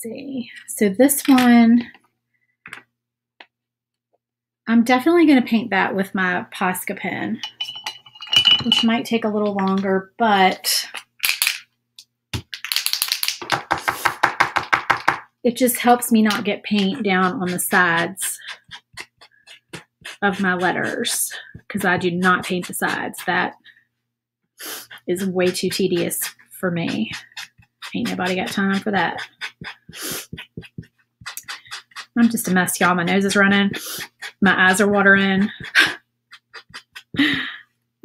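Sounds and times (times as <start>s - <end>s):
woman sniffing: 17.2s - 21.7s, 24.6s - 25.1s, 28.7s - 34.5s, 35.2s - 37.7s
woman's breathy chuckles: 35.6s - 37.6s.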